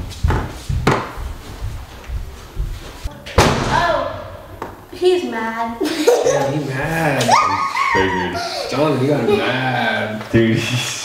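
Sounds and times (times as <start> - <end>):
loud slam: 3.4 - 4.4.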